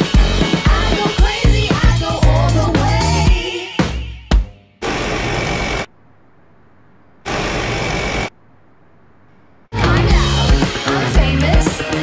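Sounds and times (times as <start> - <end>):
background music: 0.0 - 4.8, 9.8 - 12.0
machine-like noise bursts: 4.8 - 6.0, 7.2 - 8.4
faint hum: 4.8 - 10.0.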